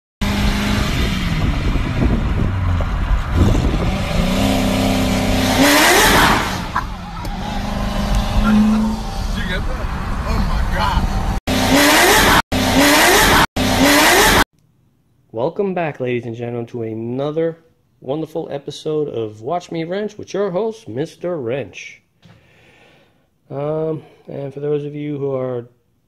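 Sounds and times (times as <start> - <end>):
car engines accelerating: 0.2 - 14.4
voices talking: 8.3 - 11.2.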